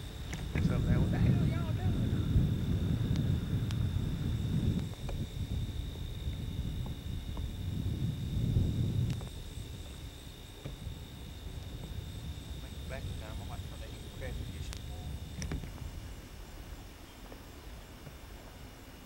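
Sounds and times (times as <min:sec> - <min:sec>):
faint high whine: 0:00.0 - 0:19.0
wind buffeting microphone: 0:00.0 - 0:19.0.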